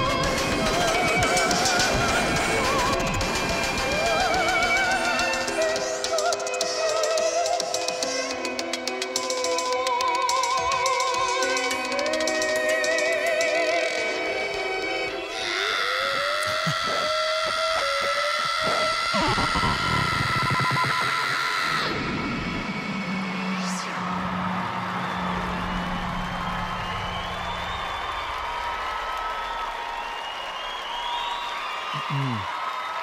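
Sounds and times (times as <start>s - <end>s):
crowd cheering: 14.8s - 33.0s.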